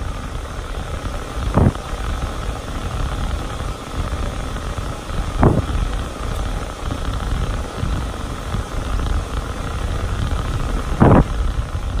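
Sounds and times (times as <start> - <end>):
pet dryer blowing air: 0.0 - 12.0.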